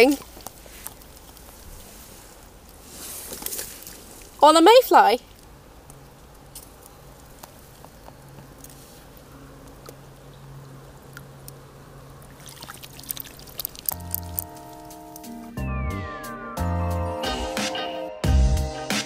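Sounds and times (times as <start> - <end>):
water splashing: 0.9 - 4.5, 12.2 - 15.0.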